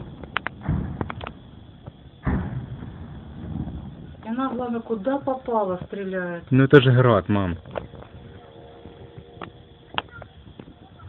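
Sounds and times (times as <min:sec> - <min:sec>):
distant rocket launcher booms: 0:00.0 - 0:05.0.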